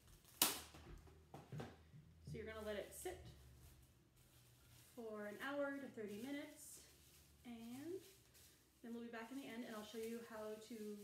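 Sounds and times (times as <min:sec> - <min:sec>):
cling wrap tearing snap: 0:00.2 - 0:00.8.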